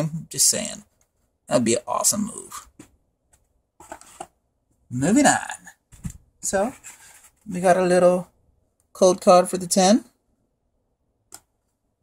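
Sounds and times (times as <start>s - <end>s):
card rustling against plastic: 3.4s - 4.4s, 5.9s - 7.5s.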